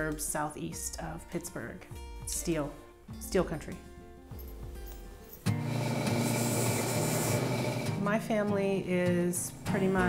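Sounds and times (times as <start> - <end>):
background music: 0.0 - 10.0
bench grinder grinding steel: 5.5 - 8.0.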